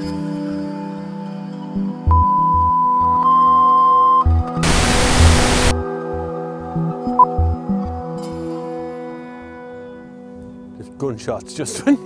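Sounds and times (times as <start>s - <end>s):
ambient music with pulsing bass: 0.0s - 10.4s
steady test tone: 4.0s - 5.7s
hiss-like test noise burst: 4.6s - 5.7s.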